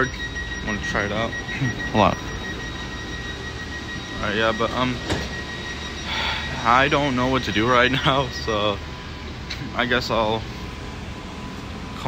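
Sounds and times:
low hum: 0.0 - 12.0
train high-pitched whine: 0.0 - 12.0.

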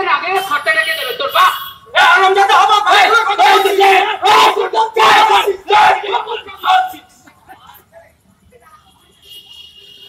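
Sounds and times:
men shouting: 1.3 - 7.2.

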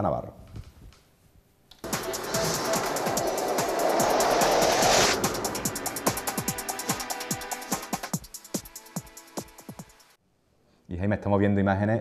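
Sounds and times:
hissing electronic build-up: 1.8 - 8.3
fast pulsing electronic beat: 1.8 - 9.2.

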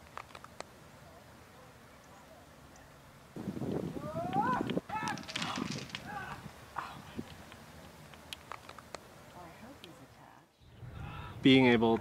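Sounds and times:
distant human calls: 3.9 - 8.5, 9.4 - 11.5.

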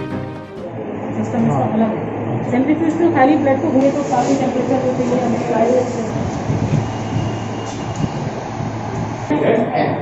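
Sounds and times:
rushing background noise: 0.6 - 10.0.

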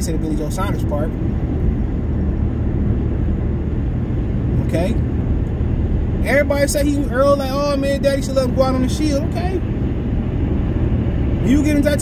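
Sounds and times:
car cabin engine and road rumble: 0.0 - 12.0.

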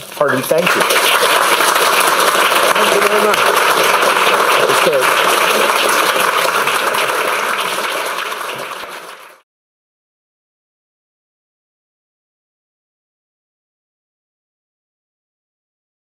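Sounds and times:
audience applauding: 0.2 - 9.4.

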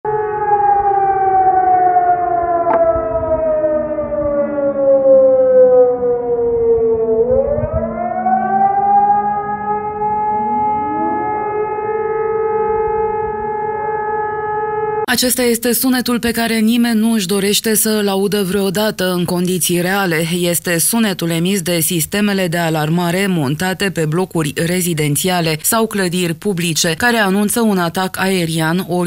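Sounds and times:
warning siren: 0.0 - 15.1
lower-pitched siren: 0.1 - 15.1.

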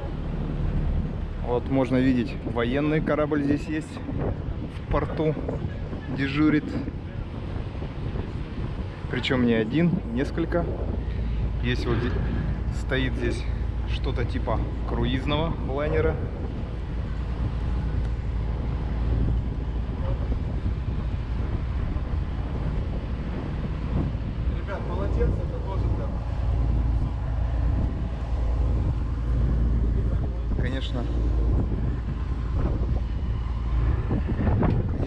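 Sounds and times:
boat engine droning: 0.0 - 35.0
faint passenger voices: 3.9 - 23.0, 24.4 - 35.0.

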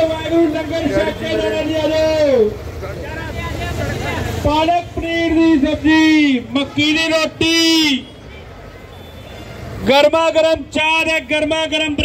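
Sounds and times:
road traffic rumble: 0.0 - 12.0.

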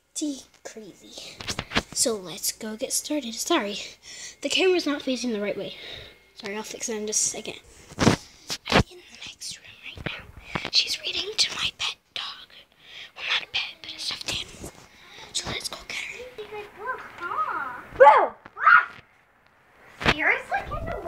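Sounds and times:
child's voice: 2.0 - 5.8, 10.8 - 11.8, 13.2 - 18.0, 20.1 - 21.0
whispering voices: 8.6 - 12.6, 13.2 - 17.6.

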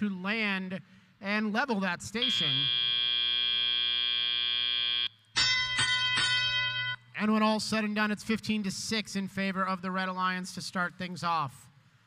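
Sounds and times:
electronic buzzer: 2.2 - 7.0
struck bell tones: 5.4 - 7.1.

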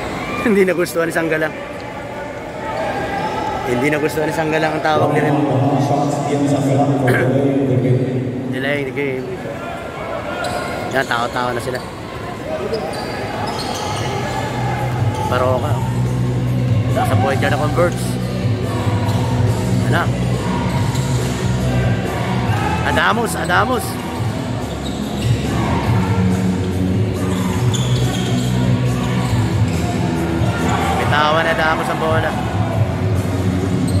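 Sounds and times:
arena crowd murmur: 0.0 - 34.0.

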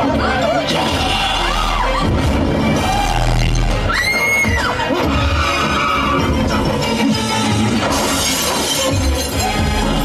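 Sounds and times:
dramatic background music: 0.0 - 10.0.

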